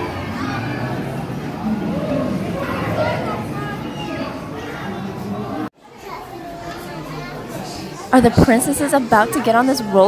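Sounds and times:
indoor crowd chatter with children: 0:00.0 - 0:10.0.

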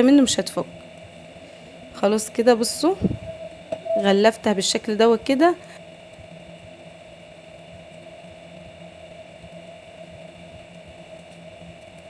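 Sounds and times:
faint constant whine: 0:00.0 - 0:12.0
low background hum: 0:00.0 - 0:12.0.

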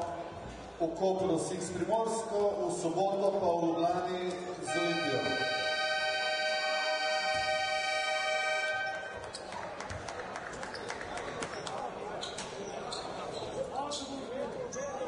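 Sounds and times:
murmur of crowd in hall: 0:00.0 - 0:15.0
arena buzzer horn: 0:04.7 - 0:09.2.

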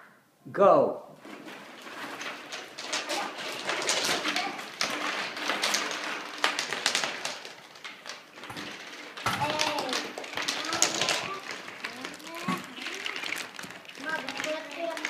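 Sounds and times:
plastic bags crinkling: 0:01.2 - 0:15.0.

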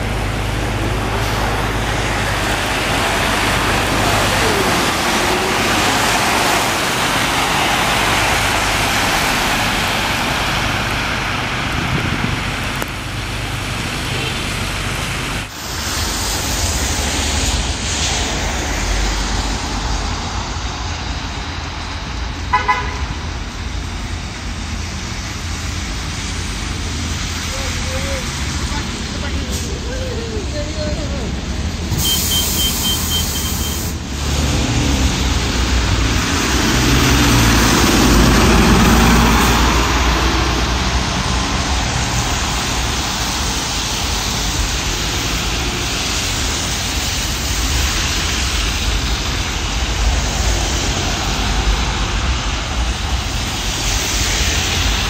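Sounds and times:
low engine rumble: 0:00.0 - 0:55.0
tyres on slushy road: 0:00.0 - 0:55.0
vehicle horn toots: 0:22.5 - 0:23.1, 0:32.0 - 0:33.9.

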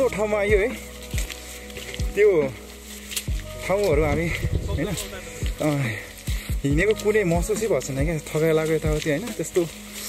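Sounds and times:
short low thumps: 0:04.0 - 0:05.6.

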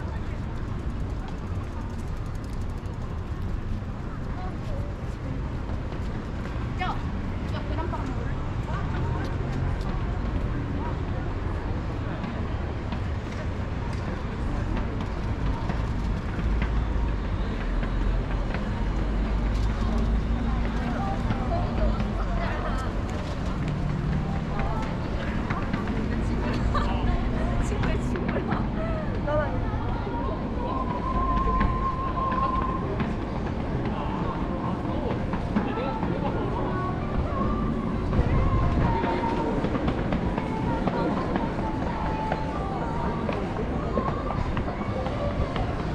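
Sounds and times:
passersby's voices: 0:00.0 - 0:45.9
steady low rumble: 0:17.8 - 0:45.9.

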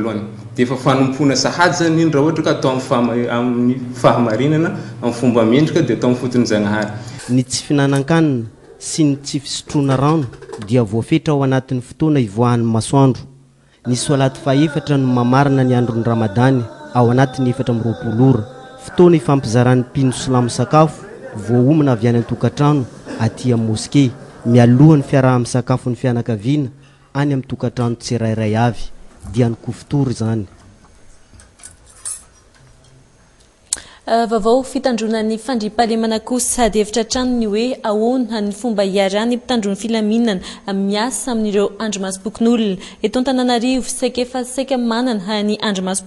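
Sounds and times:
man speaking: 0:00.0 - 0:30.6
cutlery and dishes clinking: 0:31.3 - 0:33.0.

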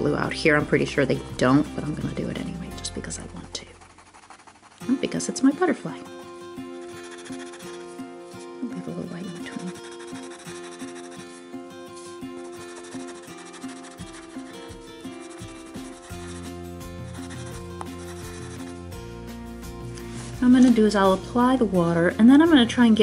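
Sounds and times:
soft background music: 0:00.0 - 0:03.8, 0:04.8 - 0:23.0
pencil rubbing on card: 0:01.9 - 0:05.6, 0:06.6 - 0:19.0.

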